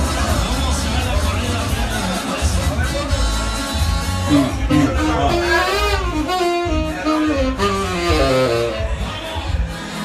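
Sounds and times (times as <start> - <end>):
saxophone melody: 3.8 - 9.2.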